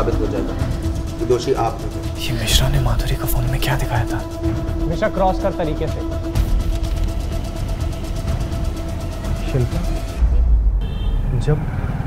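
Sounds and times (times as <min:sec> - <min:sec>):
tense film music: 0:00.0 - 0:12.0.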